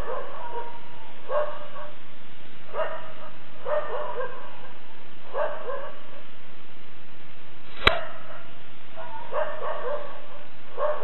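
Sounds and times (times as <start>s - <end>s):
dog yipping barks: 0.0s - 2.0s, 2.7s - 4.7s, 5.3s - 6.2s, 7.9s - 11.0s
steady hiss: 6.9s - 8.9s.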